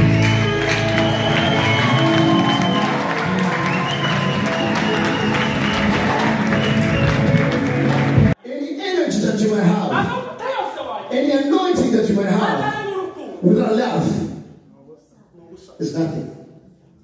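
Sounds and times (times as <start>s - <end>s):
drums: 0.0s - 8.4s.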